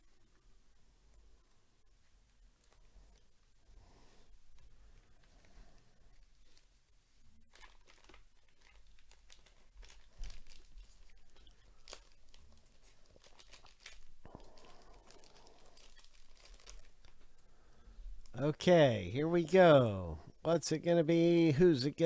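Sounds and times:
plastic wrapper tearing: 7.4 - 17.3
plastic wrapper crinkling: 7.4 - 17.4.

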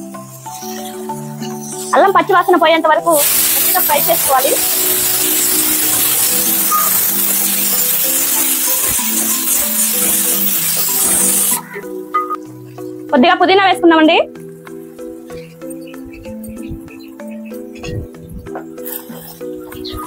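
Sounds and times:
background music: 0.0 - 20.0
onions sizzling in oil: 3.0 - 11.7.

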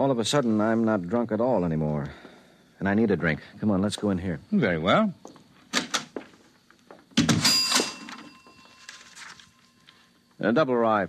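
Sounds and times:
loud clatter with ringing: 7.3 - 9.2.

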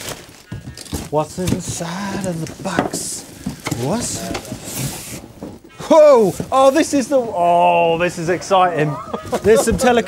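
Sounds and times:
bubble wrap and cardboard rustling: 0.0 - 7.5.

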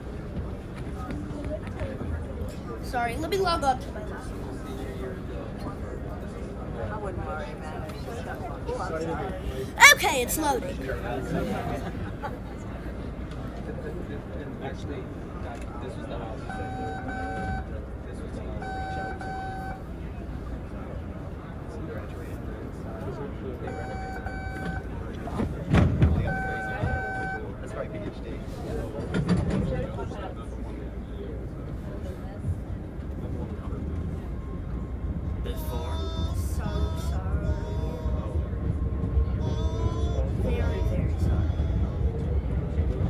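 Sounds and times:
person speaking: 9.6 - 10.8
train car rumble: 16.2 - 43.0
train door chime beeps: 16.5 - 17.7, 18.6 - 19.8, 23.7 - 24.8, 26.3 - 27.4.

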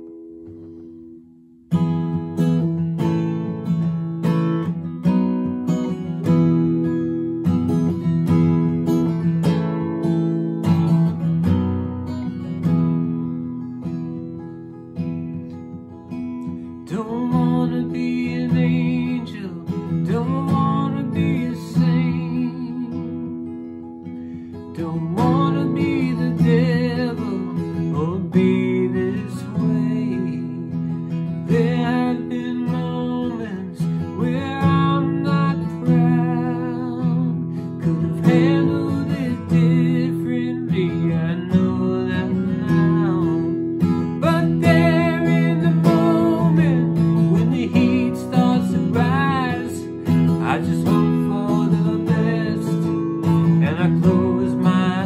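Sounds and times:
acoustic guitar: 0.0 - 55.0
man singing: 16.8 - 23.4, 24.6 - 55.0.

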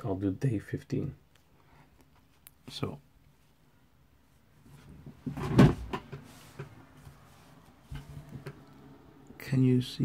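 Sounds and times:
notebook knocks and paper rustling: 4.9 - 7.2.

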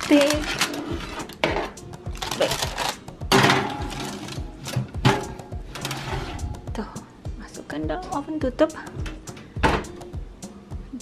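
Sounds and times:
metal baking sheet scraping: 0.0 - 1.8, 5.1 - 6.6
background music: 0.0 - 11.0.

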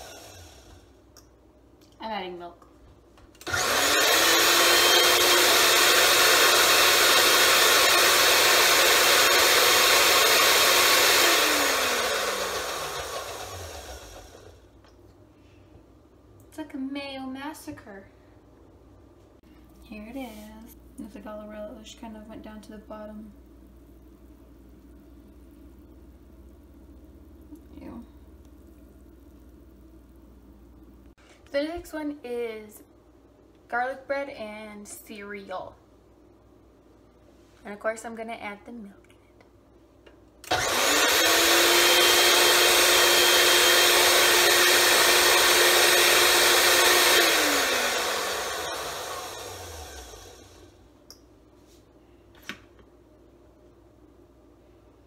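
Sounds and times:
blender motor whining: 0.0 - 0.9, 3.4 - 14.6, 40.5 - 50.8.

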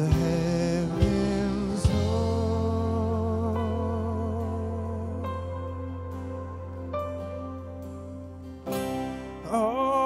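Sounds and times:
acoustic guitar chord strummed: 0.0 - 10.0.

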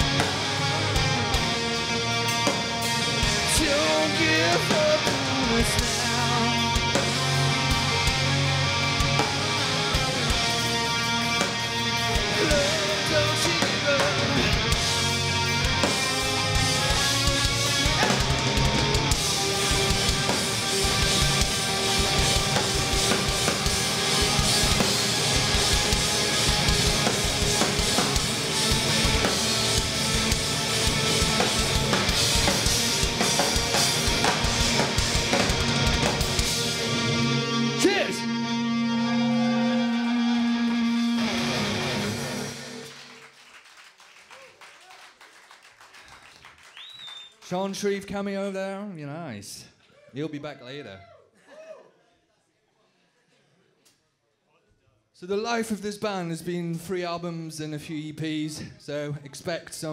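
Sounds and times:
drum kit: 0.0 - 39.0
live rock band playing: 0.0 - 43.2
person singing: 3.3 - 8.5, 12.2 - 15.1.

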